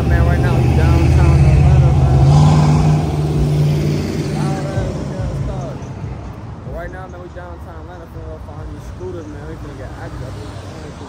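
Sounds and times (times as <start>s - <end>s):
car engine driving past: 0.0s - 6.8s.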